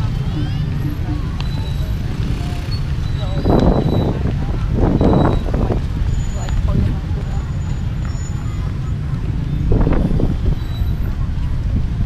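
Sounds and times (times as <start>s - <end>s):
motorbikes and cars rumbling: 0.0s - 12.0s
people's voices: 0.0s - 12.0s.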